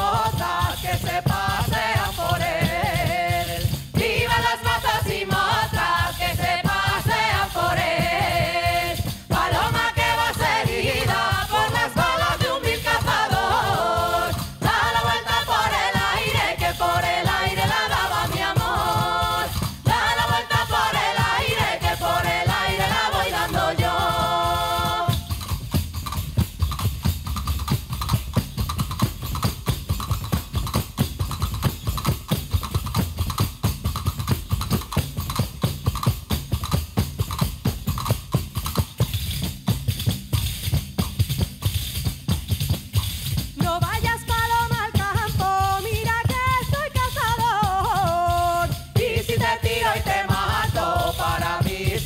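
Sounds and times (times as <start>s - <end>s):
group singing folk song: 0.0s - 25.5s, 44.4s - 52.0s
frame drums with jingles: 0.0s - 52.0s.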